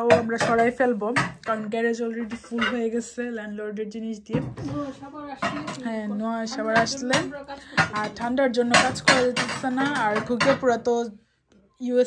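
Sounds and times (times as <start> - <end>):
person talking: 0.0 - 11.1
glass plates clinking: 4.4 - 10.8.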